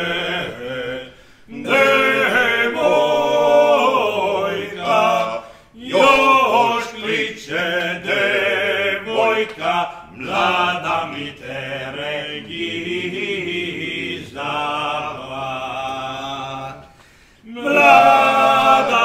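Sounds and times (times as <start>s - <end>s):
two men singing unaccompanied: 0.0s - 19.0s.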